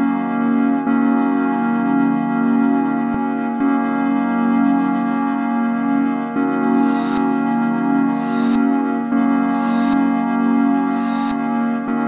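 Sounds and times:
sustained brass-like synth chord: 5.3s - 12.0s.

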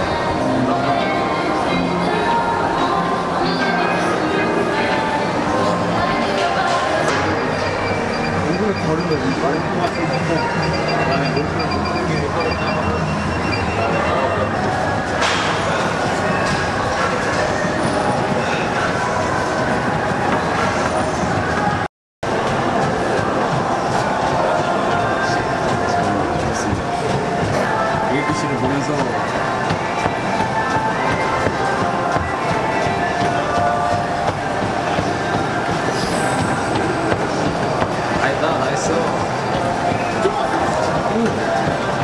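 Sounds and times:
treadmill running: 4.5s - 42.0s.

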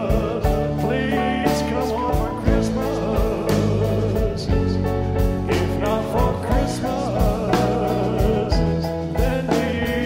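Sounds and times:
bass: 0.0s - 10.0s
keyboards: 0.0s - 10.0s
person singing lead: 0.0s - 10.0s
steady drum beat: 0.0s - 10.0s.

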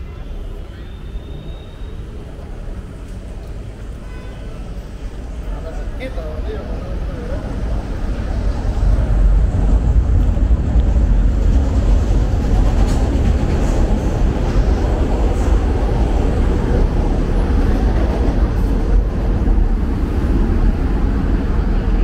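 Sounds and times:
elevated train rumbling: 0.0s - 22.0s.

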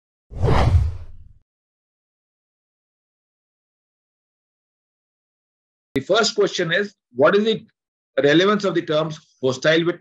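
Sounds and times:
whoosh with deep low rumble: 0.4s - 1.4s.

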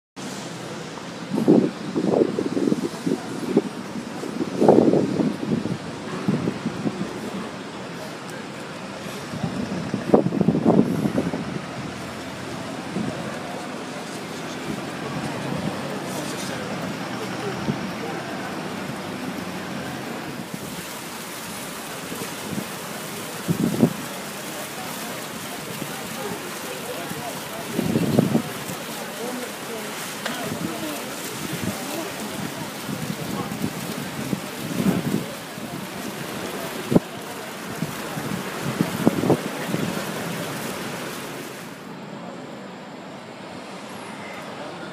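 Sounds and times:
fountain jets splashing into pool: 0.2s - 42.6s
steady traffic hum: 0.2s - 44.9s
wind rumbling on microphone: 0.3s - 41.8s.

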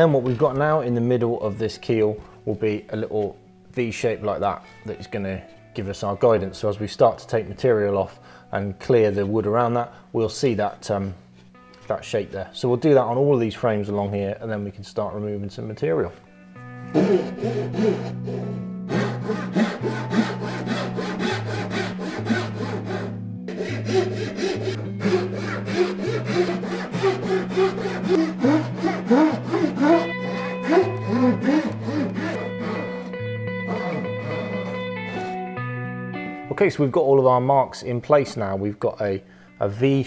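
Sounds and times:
backsaw sawing wood: 16.9s - 35.4s
guitar music with bass line: 18.1s - 18.9s, 22.5s - 23.5s, 24.6s - 25.6s, 29.3s - 36.8s.

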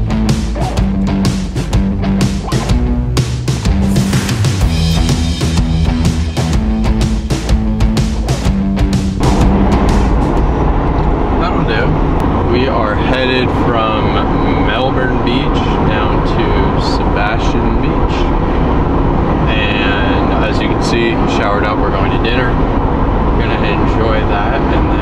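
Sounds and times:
car road and engine rumble: 0.0s - 25.0s.

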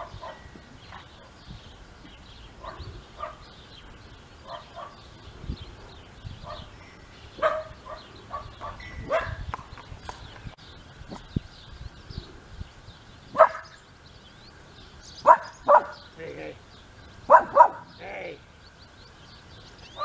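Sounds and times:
dog barking: 0.0s - 1.1s, 2.6s - 3.4s, 4.5s - 5.0s, 7.4s - 9.4s, 13.4s - 13.8s, 15.2s - 16.0s, 17.3s - 17.9s.

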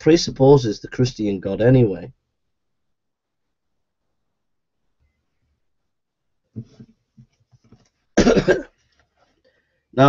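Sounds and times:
man coughing: 8.2s - 8.8s.

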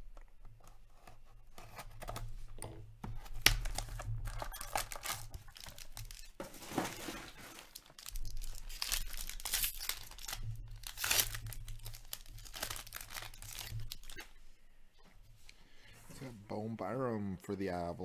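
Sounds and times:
foil wrapper tearing and crinkling: 3.2s - 14.3s.

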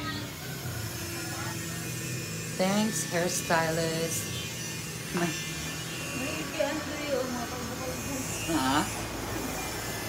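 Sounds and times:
electric hair clipper buzzing: 0.0s - 10.0s.

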